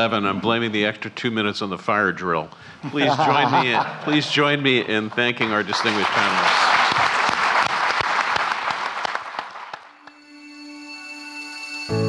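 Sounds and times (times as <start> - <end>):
audience applauding: 3.9 - 10.2
soft music with held notes: 10.0 - 12.0.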